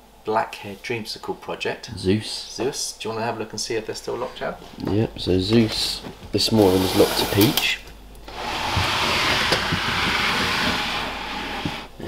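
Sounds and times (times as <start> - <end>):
plastic tub scraping on shelf: 5.6 - 12.0.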